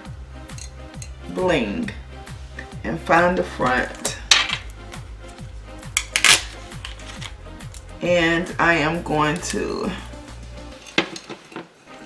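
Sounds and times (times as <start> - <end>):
plastic wrapper crinkling and clicking: 6.0 - 7.9.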